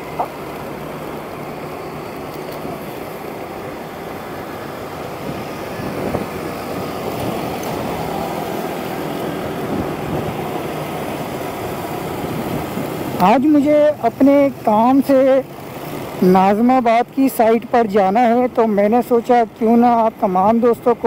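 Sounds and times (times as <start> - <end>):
motorcycle engines droning: 0.0 - 21.0
road traffic rushing: 0.0 - 21.0.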